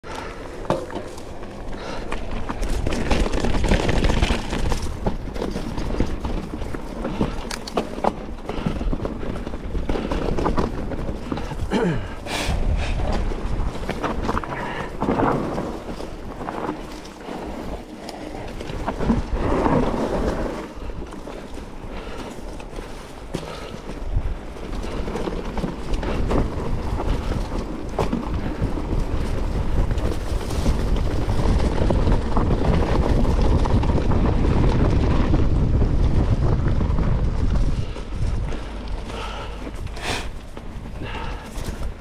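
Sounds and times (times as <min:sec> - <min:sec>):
bike tyres on dirt: 0:00.0 - 0:42.0
dry grass brushing bike: 0:00.1 - 0:35.7, 0:36.6 - 0:42.0
bike knocks and rattles: 0:00.1 - 0:42.0
wind on microphone: 0:08.2 - 0:22.3, 0:23.5 - 0:42.0.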